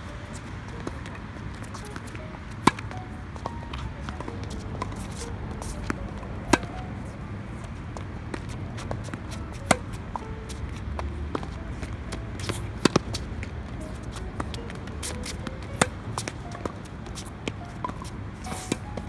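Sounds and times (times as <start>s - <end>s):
tennis balls struck with racquets: 0.0s - 19.0s.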